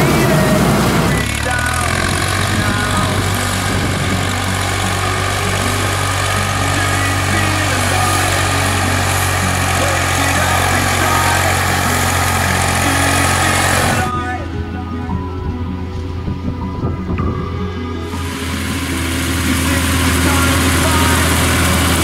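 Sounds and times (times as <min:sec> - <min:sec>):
tractor diesel engine droning: 0:00.0 - 0:22.0.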